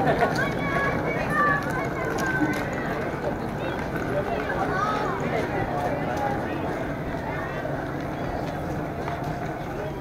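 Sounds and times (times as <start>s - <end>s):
distant chatter of people: 0.0s - 10.0s.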